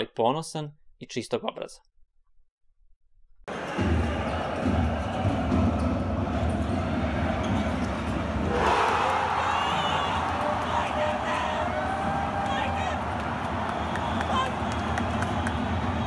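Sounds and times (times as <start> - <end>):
crowd din: 3.5 - 16.0.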